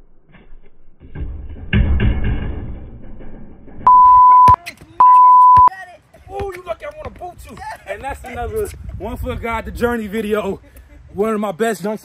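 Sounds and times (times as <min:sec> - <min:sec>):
censor bleeps: 0:03.9 - 0:05.7
speech: 0:05.7 - 0:10.6, 0:11.2 - 0:12.0.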